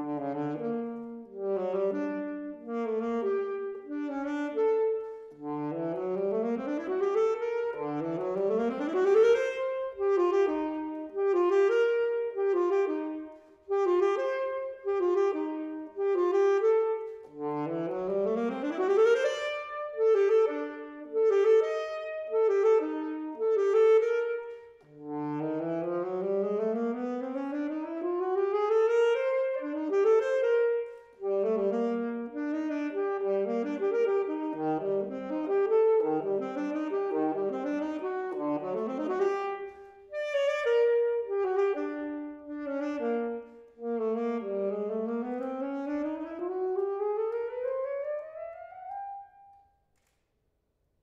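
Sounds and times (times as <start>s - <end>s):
alto saxophone playing fast runs: 0.0s - 49.2s.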